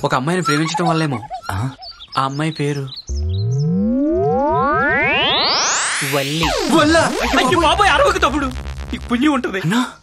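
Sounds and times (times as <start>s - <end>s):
buzzy electronic tone sweeping upward: 3.1s - 9.6s.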